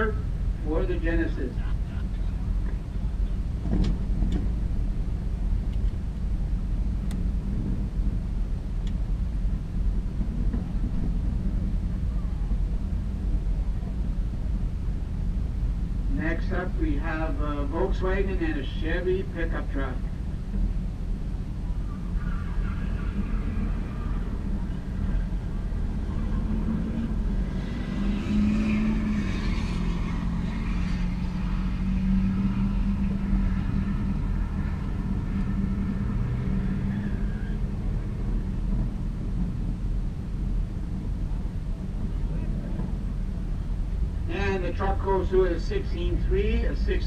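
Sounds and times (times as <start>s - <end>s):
racing engines: 0.0s - 47.0s
steady low rumble: 0.0s - 47.0s.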